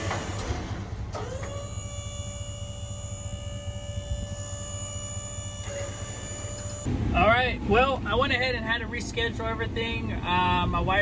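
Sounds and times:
electric hydraulic pump whining: 0.0 - 6.9
low rumble: 0.0 - 10.8.

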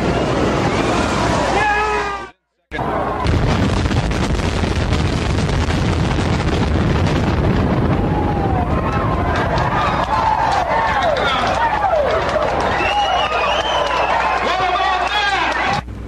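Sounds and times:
spectators shouting and whooping: 0.0 - 3.4, 7.8 - 15.8
building collapsing deep rumble: 2.8 - 13.7.

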